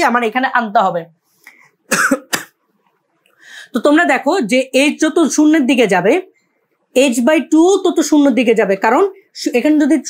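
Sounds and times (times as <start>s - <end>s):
man clearing throat: 1.9s - 2.6s
man coughing: 1.9s - 2.6s.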